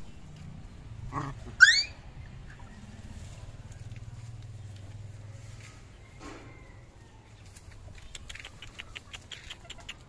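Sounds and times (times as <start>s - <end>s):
puppy yelping: 1.1s - 2.0s.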